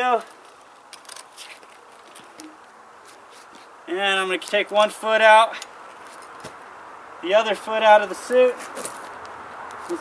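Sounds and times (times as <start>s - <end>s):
straps rustling: 0.0s - 4.9s, 5.5s - 6.6s, 8.2s - 10.0s.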